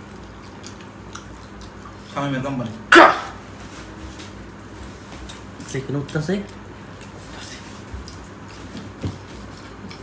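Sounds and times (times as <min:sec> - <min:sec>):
people eating with hands: 0:00.0 - 0:10.0.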